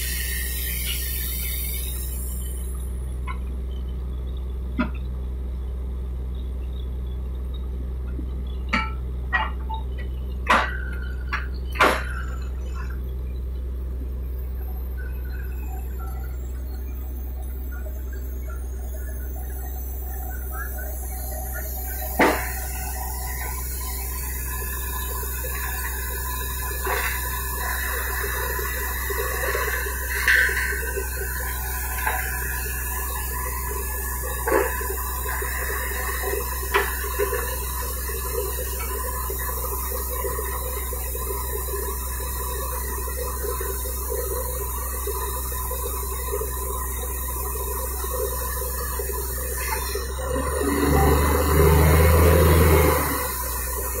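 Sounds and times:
drilling rig engine drone: 0.0s - 54.0s.

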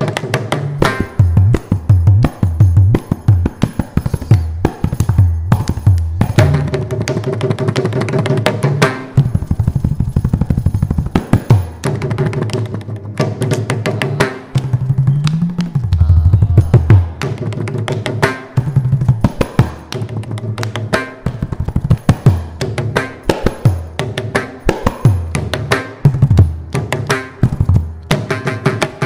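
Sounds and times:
mridangam drumming: 0.0s - 29.0s.

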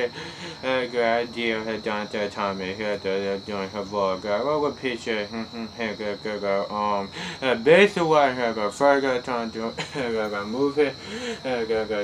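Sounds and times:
man mumbling half-sung syllables: 0.0s - 8.6s, 9.4s - 12.0s.

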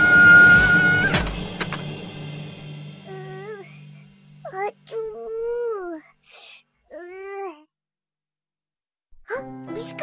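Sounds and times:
child screaming: 0.0s - 1.3s
background music: 0.0s - 5.9s, 9.3s - 10.0s.

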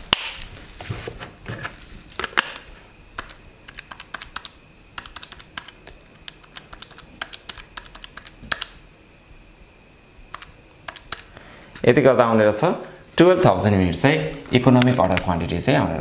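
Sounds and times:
calculator keys clicking: 3.2s - 8.8s, 10.3s - 11.3s.

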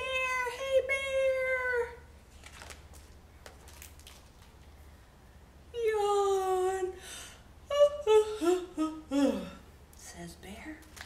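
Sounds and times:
woman humming: 7.7s - 9.6s.

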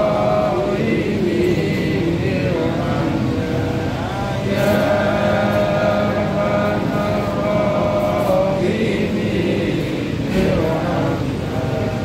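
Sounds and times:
steady low drone: 0.0s - 12.0s
voices chanting long note: 0.0s - 12.0s.

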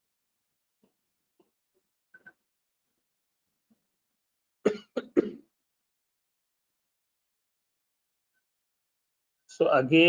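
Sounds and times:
man coughing: 4.7s - 5.4s.

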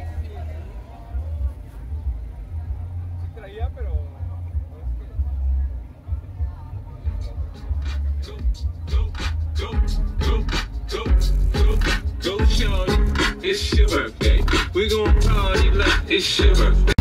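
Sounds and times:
hip-hop track with heavy bass: 1.2s - 17.0s
person rapping: 6.4s - 17.0s.

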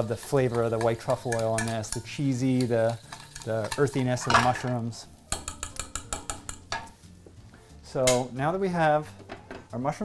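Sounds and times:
wire whisk tapping saucepan: 0.4s - 4.5s, 5.3s - 7.0s.

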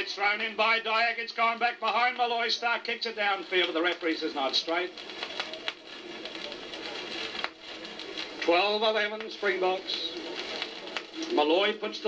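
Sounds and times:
record surface hiss: 0.0s - 12.0s.

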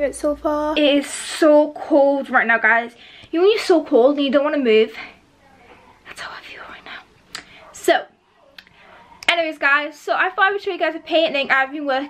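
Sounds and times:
woman whispering: 6.0s - 7.1s
woman speaking: 7.7s - 8.2s, 9.2s - 12.0s.

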